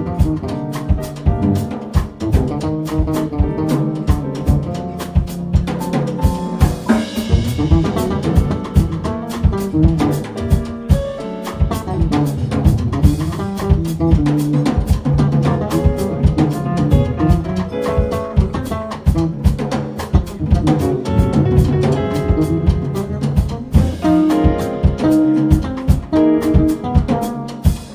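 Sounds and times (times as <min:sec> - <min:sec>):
drum kit beat: 0:00.0 - 0:27.9
jazz trio playing: 0:00.0 - 0:27.9.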